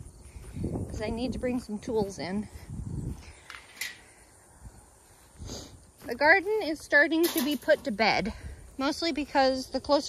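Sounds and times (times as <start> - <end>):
cart bumping over grass: 5.9 - 8.3.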